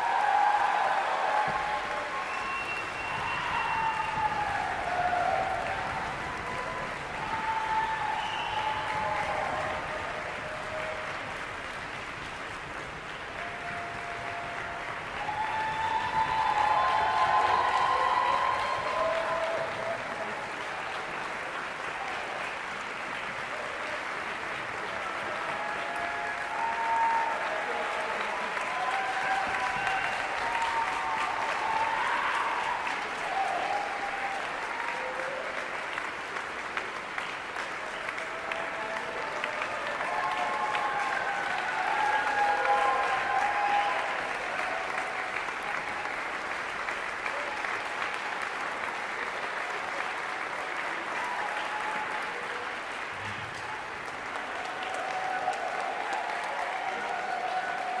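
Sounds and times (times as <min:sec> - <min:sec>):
audience applauding: 0:00.0 - 0:58.0
audience cheering: 0:00.0 - 0:58.0.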